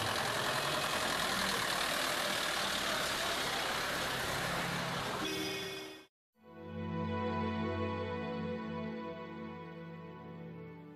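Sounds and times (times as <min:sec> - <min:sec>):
van engine driving past: 0:00.0 - 0:05.2.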